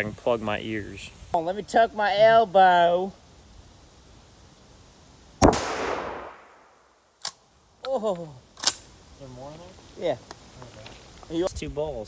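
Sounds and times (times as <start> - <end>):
gunshot echoing: 5.4 - 6.9.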